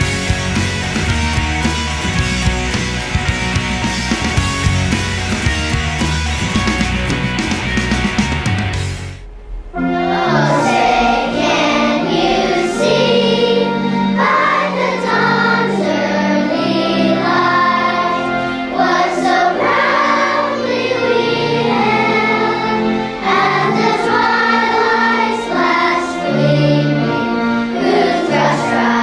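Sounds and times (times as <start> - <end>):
instrumental backing notes: 0.0 - 29.0
children's choir singing: 9.8 - 29.0.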